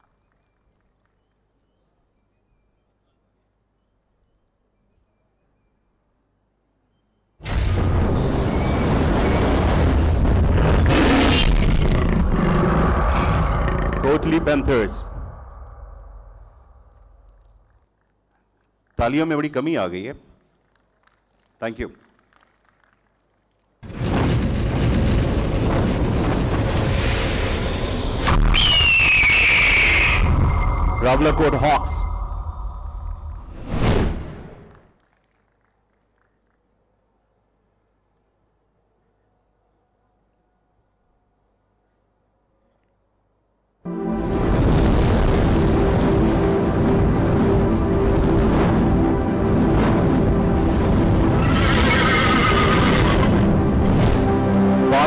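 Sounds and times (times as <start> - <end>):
low rumble: 7.5 - 17.7, 30.1 - 34.7, 43.9 - 51.6
hawk scream: 28.5 - 32.6, 51.4 - 53.3
horse whinny sound effect: 51.4 - 53.3.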